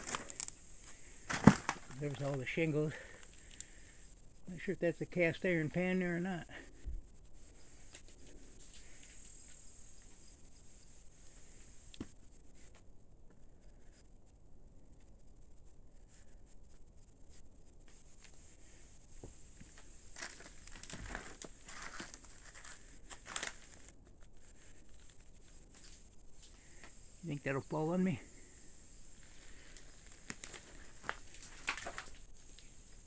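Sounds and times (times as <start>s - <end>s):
debris crunching underfoot: 0.0s - 3.8s, 19.5s - 24.0s, 29.1s - 33.0s
insect chirring: 0.0s - 33.0s.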